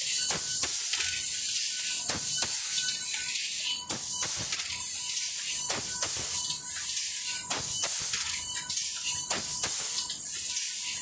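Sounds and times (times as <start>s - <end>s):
machine high hiss: 0.0s - 11.0s
sharp mechanical clacks: 0.2s - 11.0s.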